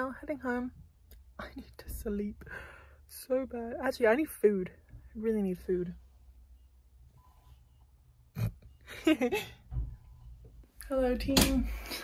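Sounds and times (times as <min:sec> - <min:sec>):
faint low hum inside car: 0:00.0 - 0:11.9.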